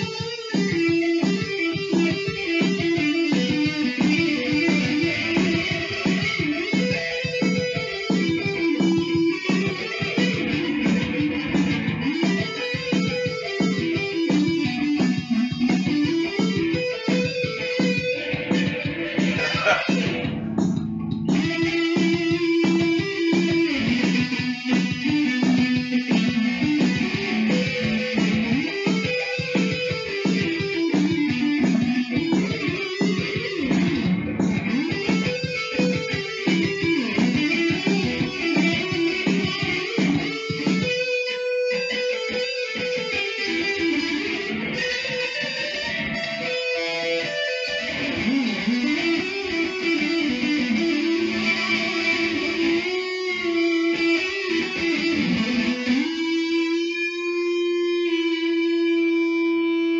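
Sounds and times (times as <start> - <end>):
electric guitar melody: 0.0 - 59.9.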